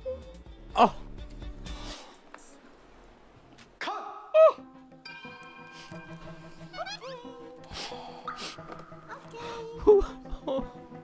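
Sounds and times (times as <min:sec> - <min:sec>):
background music with steady tones: 0:00.0 - 0:11.0.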